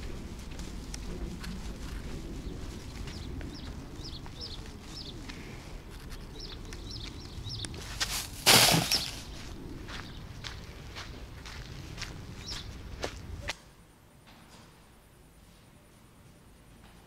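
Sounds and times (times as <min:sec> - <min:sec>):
small birds chirping: 0:00.0 - 0:13.5
footsteps outdoors: 0:00.0 - 0:13.6.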